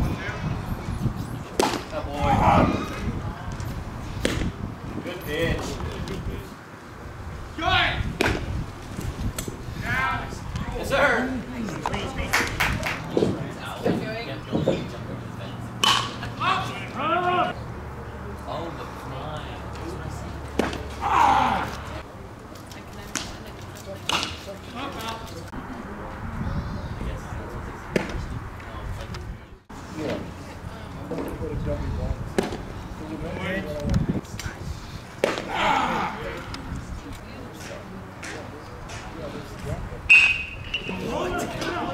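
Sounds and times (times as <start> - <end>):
voices calling out: 0.0 - 41.9
baseball smacking into mitt: 1.6 - 1.9, 3.5 - 4.5, 8.2 - 8.5, 15.8 - 16.2, 20.5 - 20.8, 32.4 - 32.6, 35.2 - 35.6.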